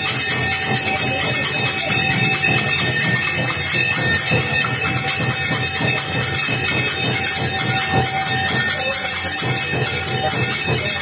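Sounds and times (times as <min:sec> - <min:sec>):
bells and cymbals clanging: 0:00.0 - 0:11.0
steady rhythmic beat: 0:00.0 - 0:11.0.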